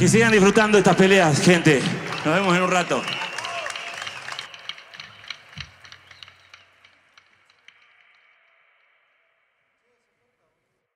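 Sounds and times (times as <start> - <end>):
scattered handclaps: 0.0 - 8.2.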